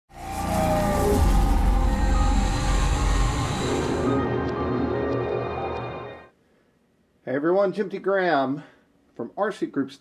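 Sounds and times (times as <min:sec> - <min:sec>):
hissing whoosh: 0:00.1 - 0:04.4
short falling tone: 0:00.1 - 0:06.2
low rumble: 0:00.2 - 0:05.9.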